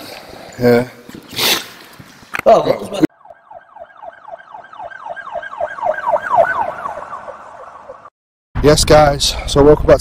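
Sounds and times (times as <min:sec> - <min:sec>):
emergency vehicle siren sweeps: 0:03.1 - 0:08.1.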